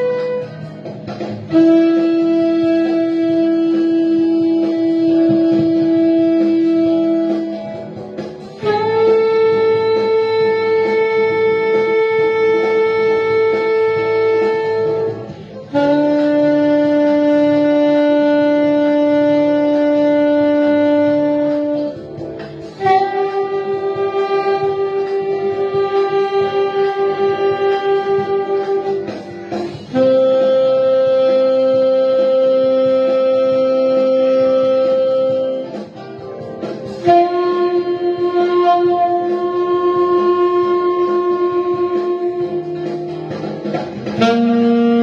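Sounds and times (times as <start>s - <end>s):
saxophone playing long tones: 0.0s - 45.0s.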